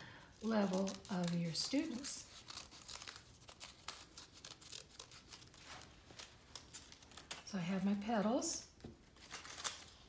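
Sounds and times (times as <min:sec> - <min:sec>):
scissors snipping paper: 0:00.4 - 0:07.5.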